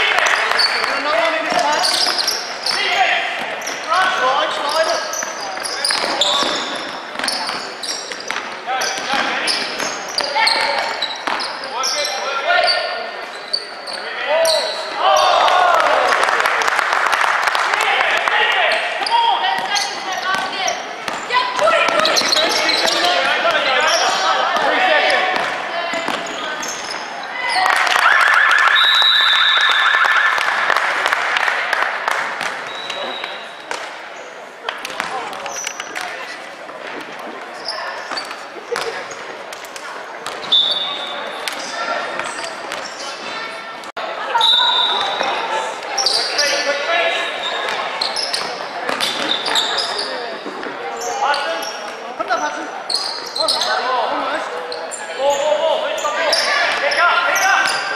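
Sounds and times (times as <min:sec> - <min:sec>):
sneakers squeaking: 0:00.0 - 0:15.5, 0:18.7 - 0:30.5, 0:32.1 - 0:57.9.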